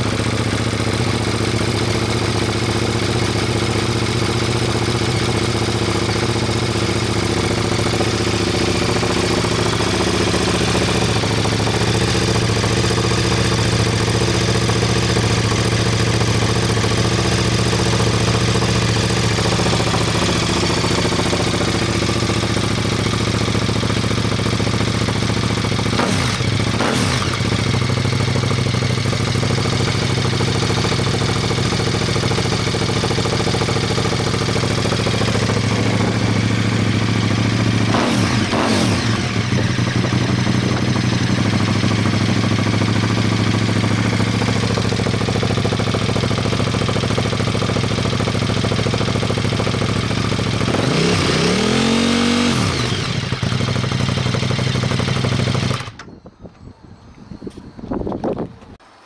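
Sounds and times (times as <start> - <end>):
motorcycle engine idling: 0.0 - 56.3.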